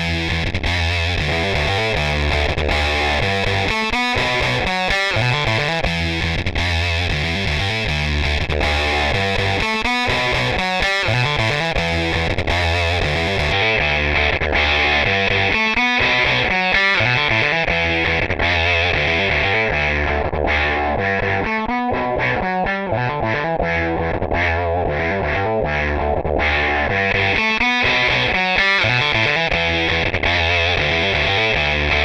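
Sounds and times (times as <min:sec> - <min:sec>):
distorted electric guitar riff: 0:00.0 - 0:32.0.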